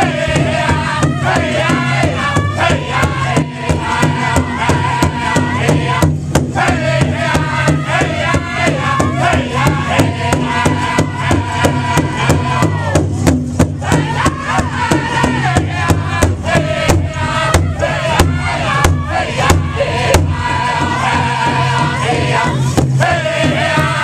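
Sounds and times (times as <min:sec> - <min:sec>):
large drum steady beat: 0:00.0 - 0:24.0
men singing together: 0:00.0 - 0:24.0.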